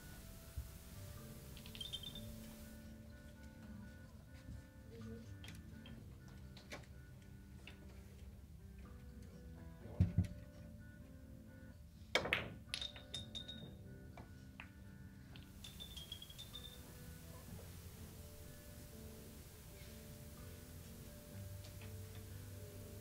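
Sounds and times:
billiard balls clicking: 1.4s - 2.5s, 12.2s - 16.9s.

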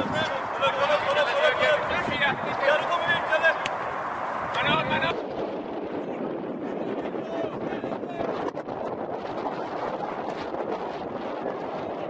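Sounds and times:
people talking and calling out: 0.0s - 5.2s, 6.6s - 8.5s
steady rushing noise: 0.0s - 12.0s.

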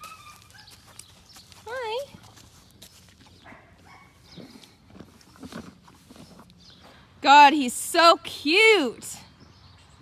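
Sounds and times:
horse snuffling and rubbing: 0.0s - 6.9s.

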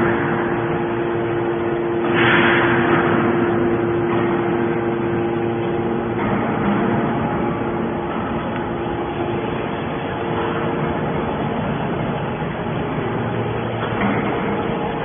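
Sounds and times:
baler motor hum: 0.0s - 15.0s.

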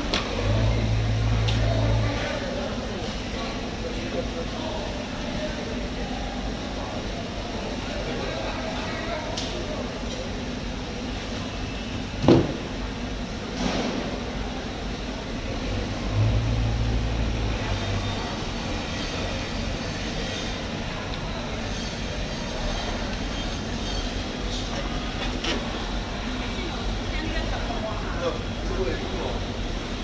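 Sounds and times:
busy work floor background noise: 0.0s - 30.0s
low machine hum: 0.0s - 30.0s.

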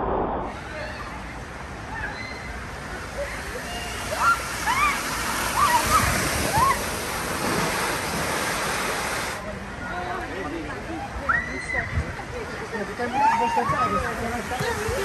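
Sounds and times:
water rushing and splashing: 0.0s - 15.0s.

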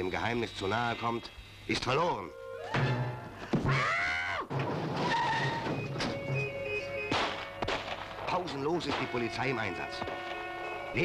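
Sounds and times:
car tyres squealing: 5.0s - 6.8s.

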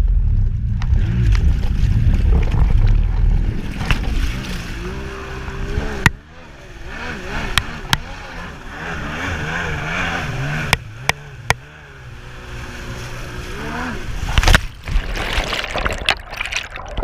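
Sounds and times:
water rushing and spraying: 3.2s - 6.0s, 12.0s - 17.0s
jet ski engine revving: 3.5s - 14.6s.

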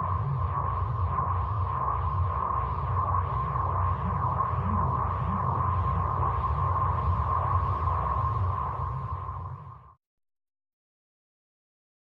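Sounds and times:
low rumbling drone: 0.0s - 9.9s.

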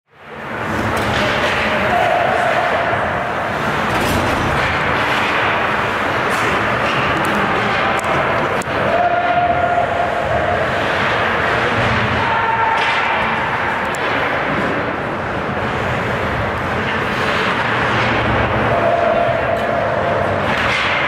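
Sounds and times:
skates and arena noise: 0.1s - 21.0s
hockey sticks clacking on puck: 0.6s - 9.6s, 10.3s - 15.0s, 16.7s - 21.0s
players calling: 1.1s - 3.9s.

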